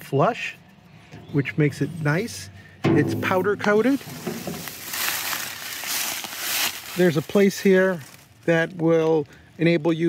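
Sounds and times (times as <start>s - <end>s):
dry leaves crunching and rustling: 3.2s - 10.0s.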